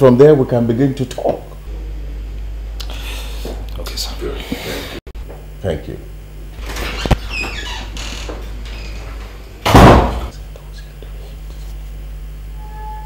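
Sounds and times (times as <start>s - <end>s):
door shutting with a thump: 9.6s - 10.3s.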